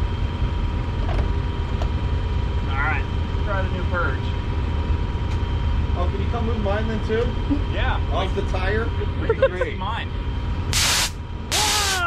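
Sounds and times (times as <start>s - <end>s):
faint constant hum: 0.0s - 12.0s.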